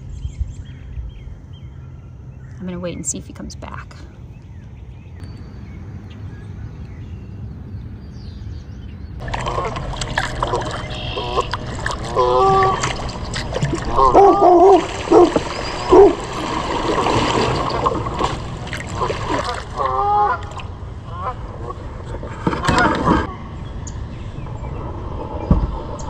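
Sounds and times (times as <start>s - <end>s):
low rumble: 0.0s - 26.0s
water splashing around paddle: 9.2s - 23.4s.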